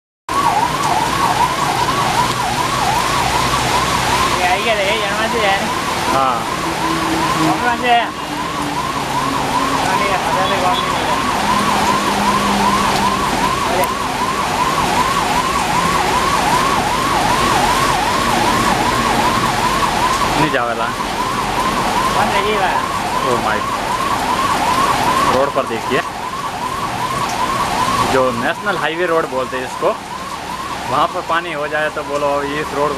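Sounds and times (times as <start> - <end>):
heavy rain falling: 0.3 - 32.9
police siren wailing: 0.3 - 32.9
warbling siren tones: 0.3 - 32.9.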